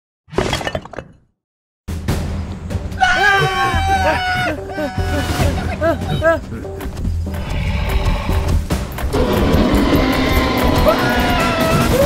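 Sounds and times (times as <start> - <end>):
glass breaking and shattering: 0.4 - 1.2.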